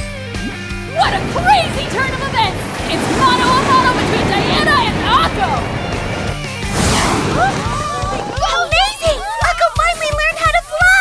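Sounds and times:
background music: 0:00.0 - 0:11.0
rushing whoosh: 0:00.8 - 0:08.8
excited voices: 0:00.9 - 0:11.0.

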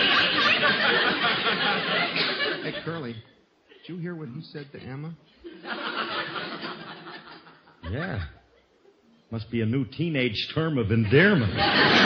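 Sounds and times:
studio audience laughing: 0:00.0 - 0:03.1, 0:05.5 - 0:08.1, 0:11.1 - 0:12.0.

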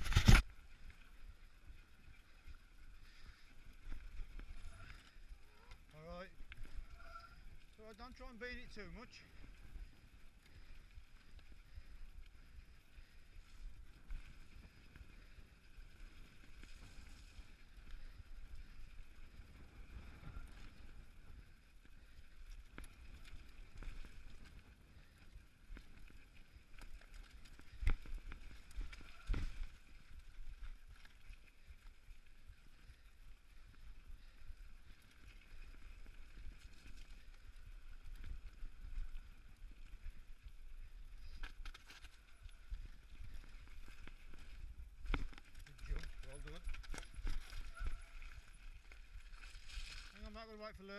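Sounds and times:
bike rattling: 0:00.0 - 0:50.4
bike tyres rumbling on gravel: 0:00.0 - 0:50.6.

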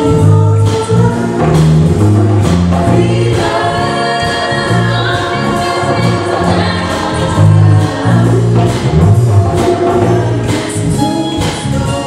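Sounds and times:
low bass line: 0:00.0 - 0:12.0
percussion beat: 0:00.0 - 0:12.0
chorus singing: 0:02.4 - 0:12.0.

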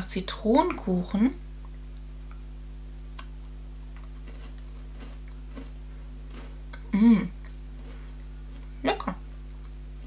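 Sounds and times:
low hum: 0:00.0 - 0:10.0
biscuit crunching while chewed: 0:03.2 - 0:08.8
person humming mh: 0:06.8 - 0:07.4.

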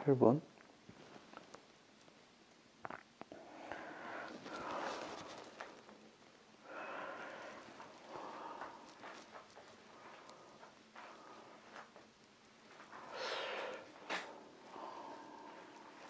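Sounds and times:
person breathing out heavily: 0:03.4 - 0:05.6, 0:06.6 - 0:09.3, 0:12.9 - 0:16.0.

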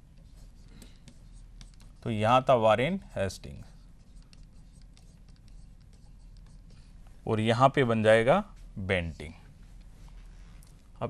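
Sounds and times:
stylus scratching on touchscreen: 0:00.1 - 0:07.0.

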